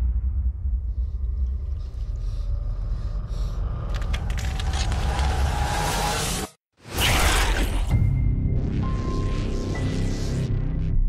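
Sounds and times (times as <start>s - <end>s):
deep rumbling drone: 0.0s - 5.7s.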